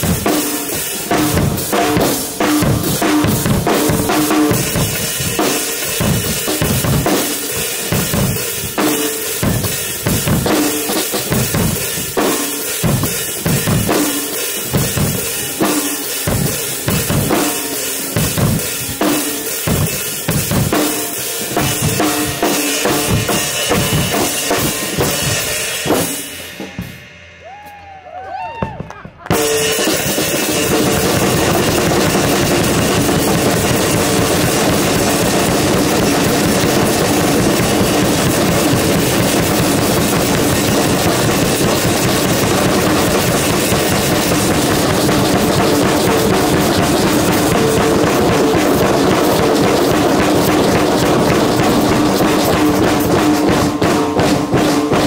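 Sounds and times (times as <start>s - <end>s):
many drum kits playing: 0.0s - 55.0s.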